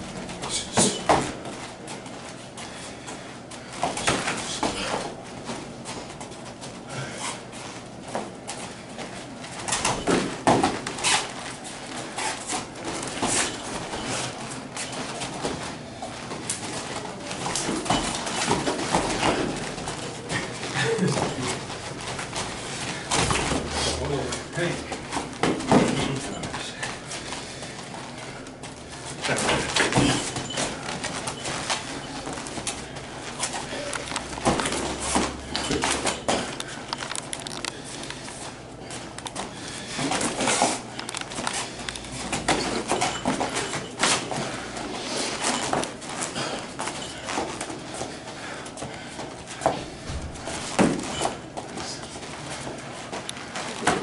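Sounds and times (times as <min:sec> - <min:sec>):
footsteps on foam mats: 0:00.2 - 0:54.0
short vocal grunts: 0:04.0 - 0:05.2, 0:29.2 - 0:30.4.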